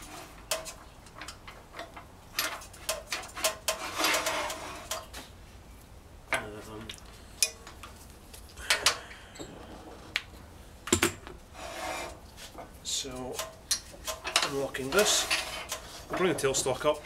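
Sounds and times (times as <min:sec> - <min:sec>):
scraping: 0:00.0 - 0:05.3, 0:11.5 - 0:17.0
metal clicks and knocks: 0:00.4 - 0:04.3.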